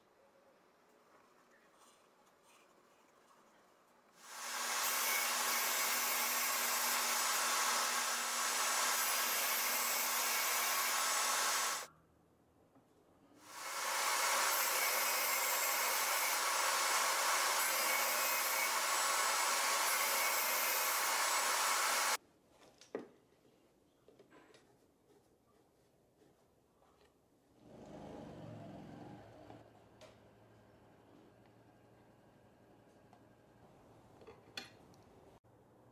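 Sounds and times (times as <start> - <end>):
table saw motor running: 4.4 - 11.9, 13.5 - 22.2.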